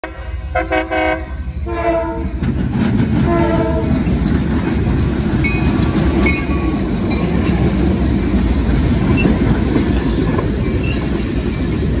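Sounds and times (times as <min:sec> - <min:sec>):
locomotive horn blast: 0:00.0 - 0:02.4, 0:03.2 - 0:04.0
train wheels on rails: 0:00.0 - 0:12.0.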